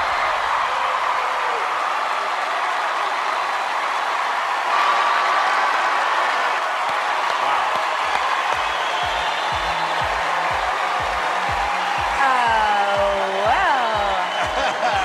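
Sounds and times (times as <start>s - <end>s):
audience applauding and cheering: 0.0s - 15.0s
music: 7.4s - 15.0s.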